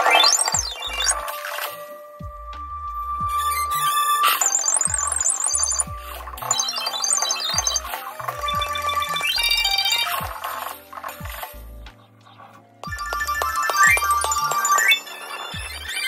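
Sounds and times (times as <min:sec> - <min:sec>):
low bass notes: 0:00.6 - 0:01.3, 0:02.2 - 0:04.1, 0:04.9 - 0:06.6, 0:07.5 - 0:12.2, 0:15.6 - 0:16.0
marimba fast runs: 0:12.9 - 0:16.0.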